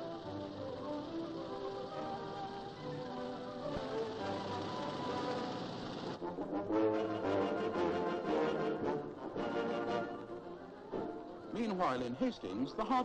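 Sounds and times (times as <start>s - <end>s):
brass background music: 6.1s - 13.0s.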